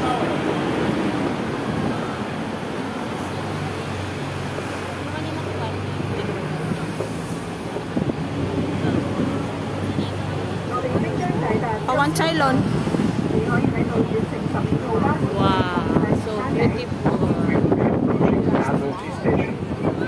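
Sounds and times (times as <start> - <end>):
bus engine hum: 0.0 - 20.0
faint voices: 0.0 - 20.0
road traffic noise: 0.0 - 20.0
wind: 0.0 - 20.0.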